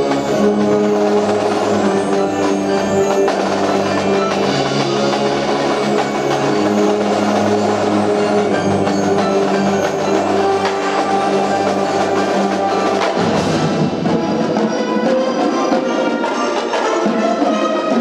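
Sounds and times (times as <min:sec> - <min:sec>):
marching drum line: 0:00.0 - 0:18.0.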